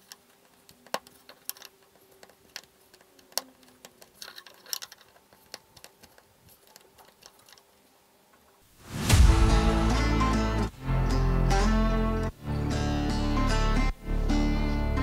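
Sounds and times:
metal tool clicking and scraping: 0.0 - 7.6
acoustic guitar music: 9.2 - 15.0.

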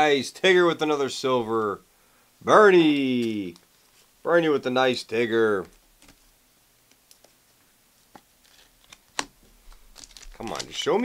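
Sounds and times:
trading cards clicking: 8.8 - 10.9.

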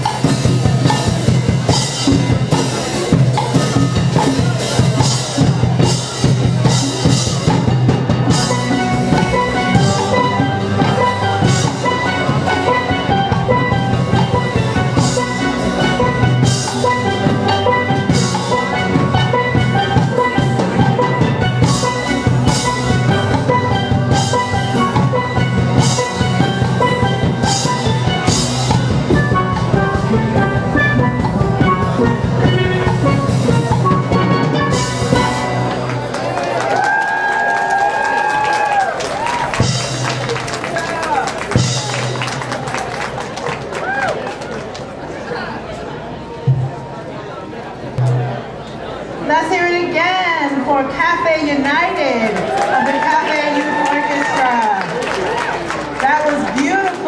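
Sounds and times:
steel pans playing: 0.0 - 43.2
drums: 0.0 - 45.0, 46.3 - 48.8.

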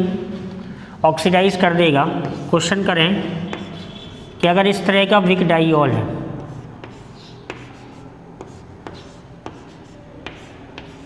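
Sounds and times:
chalk scratching on blackboard: 2.2 - 2.8, 3.4 - 4.6, 6.4 - 11.0
chalk tapping on board: 3.5 - 4.4, 6.4 - 11.0.

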